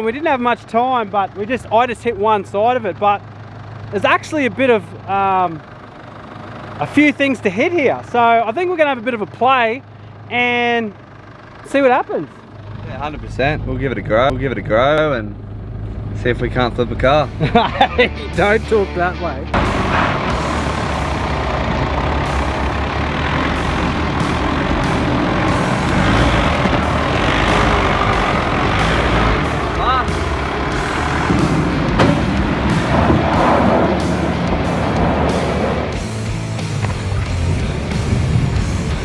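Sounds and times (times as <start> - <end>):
truck engine working under load: 0.0 - 39.0
tyres churning loose dirt: 19.6 - 39.0.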